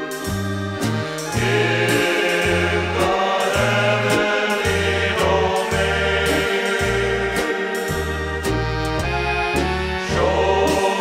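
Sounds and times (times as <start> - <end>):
bass line: 0.0 - 11.0
polka band playing: 0.0 - 11.0
voices singing together: 1.2 - 11.0.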